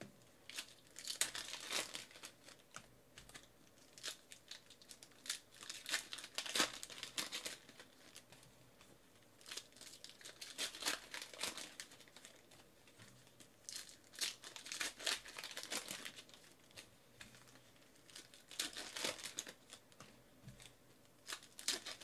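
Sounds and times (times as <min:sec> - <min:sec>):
foil wrappers crinkling and tearing: 0:00.4 - 0:08.4, 0:09.4 - 0:19.9, 0:20.6 - 0:22.0.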